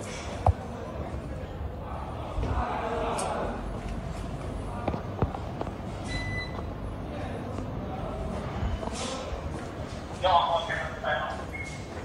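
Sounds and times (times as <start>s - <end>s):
low background noise: 0.0s - 12.0s
short electronic beep: 6.1s - 6.6s.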